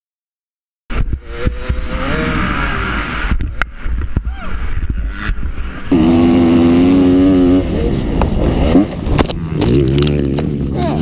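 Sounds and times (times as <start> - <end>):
dirt bike engine revving: 0.9 - 11.0.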